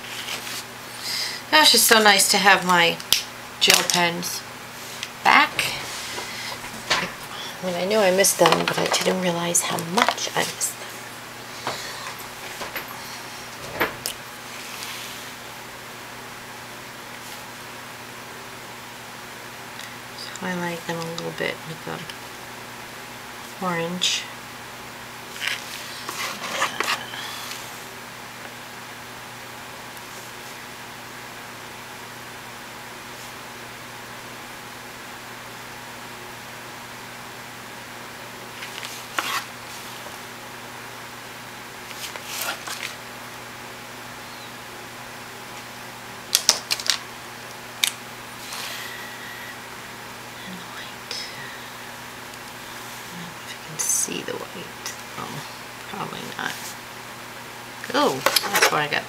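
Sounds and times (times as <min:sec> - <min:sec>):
paper rustling: 0:00.0 - 0:00.7, 0:38.6 - 0:40.2, 0:41.9 - 0:43.0
fan hum: 0:00.0 - 0:59.0.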